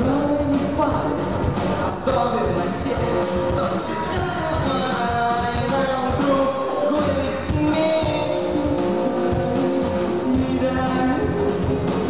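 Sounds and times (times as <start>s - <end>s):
bass guitar: 0.0s - 12.0s
electric guitar chords: 0.0s - 12.0s
steady drum beat: 0.0s - 12.0s.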